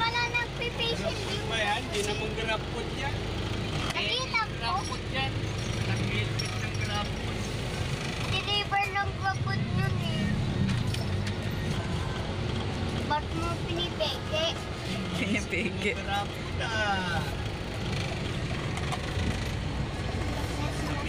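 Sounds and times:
vehicle engine and road noise: 0:00.0 - 0:21.0.

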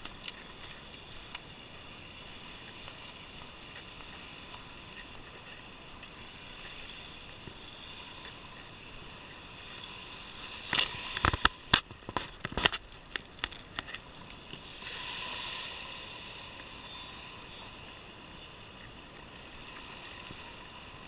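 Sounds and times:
small waves washing ashore: 0:00.0 - 0:21.0.

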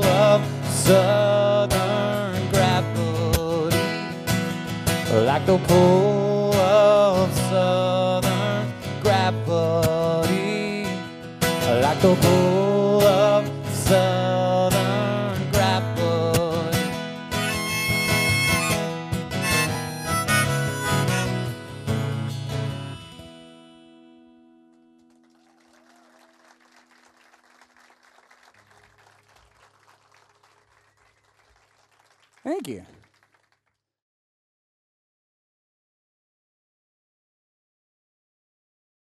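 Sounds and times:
strummed acoustic guitar: 0:00.0 - 0:24.9
harmonica: 0:17.3 - 0:23.5.

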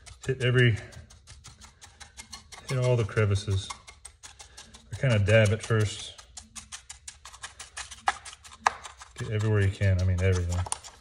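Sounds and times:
brush dabbing on wood: 0:00.0 - 0:11.0.

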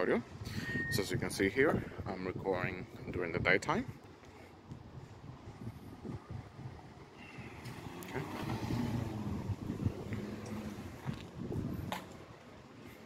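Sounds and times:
vehicle passing: 0:07.4 - 0:12.1.

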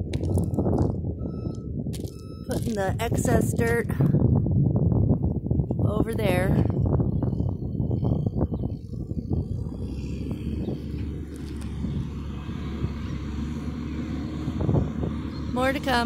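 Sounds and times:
diesel engines rumbling: 0:00.0 - 0:16.0.

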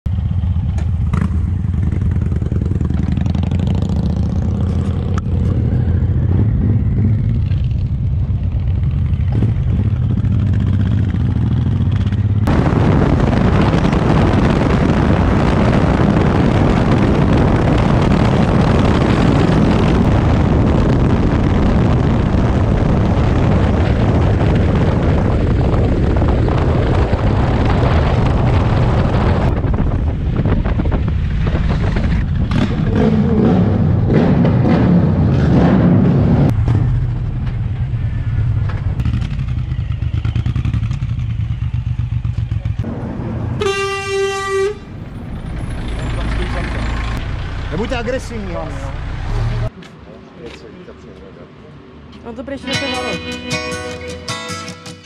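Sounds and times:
motorcycle engine rumbling: 0:00.1 - 0:49.8
wind rushing over microphone: 0:01.2 - 0:42.0.

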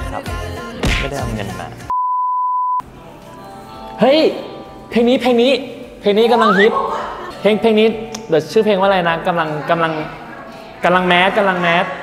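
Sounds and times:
faint background music: 0:02.8 - 0:12.0
high-pitched test tone beep: 0:06.3 - 0:06.9.

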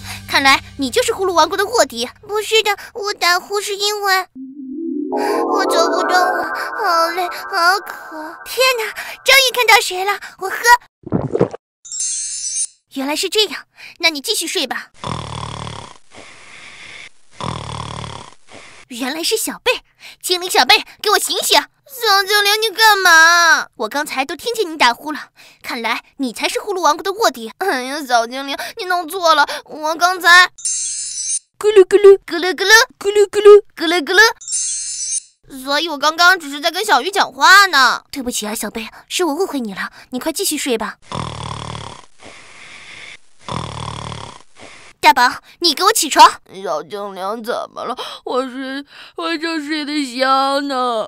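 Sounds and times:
cartoon snoring: 0:15.0 - 0:16.0, 0:17.4 - 0:18.4, 0:41.0 - 0:44.8
quiet breath out: 0:42.2 - 0:43.2.

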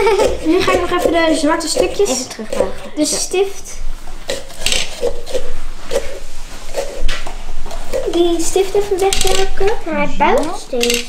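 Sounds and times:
small saws rasping through pumpkin: 0:00.1 - 0:03.4.

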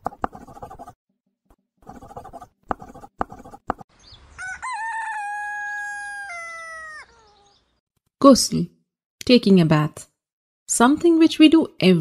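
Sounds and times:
rooster crowing: 0:04.3 - 0:07.4.

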